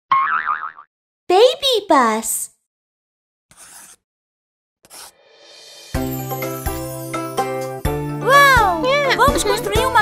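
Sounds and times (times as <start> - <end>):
springy cartoon boing: 0.1 - 0.9.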